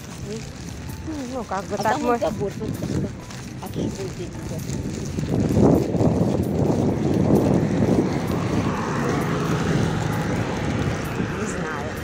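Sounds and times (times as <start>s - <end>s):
motor vehicle passing: 0.0s - 12.0s
wind rumbling on microphone: 0.0s - 12.0s.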